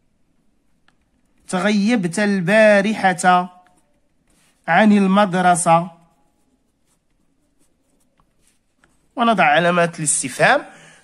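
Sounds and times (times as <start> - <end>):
marker scratching on paper: 2.9 - 9.7.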